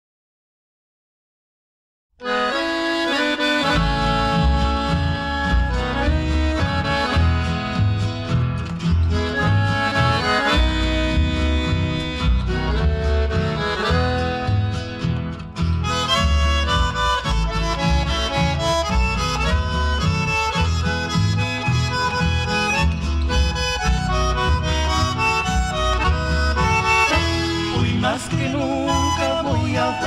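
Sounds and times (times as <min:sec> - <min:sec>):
accordion melody: 0:02.2 - 0:30.0
guitars: 0:02.2 - 0:30.0
rhythmic bass line: 0:02.4 - 0:30.0.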